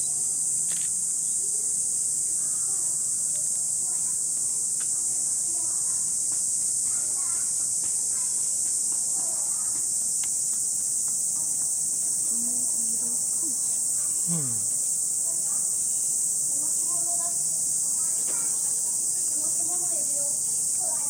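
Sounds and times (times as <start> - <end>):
cicadas droning: 0.0 - 21.0
faint voices: 11.2 - 15.8.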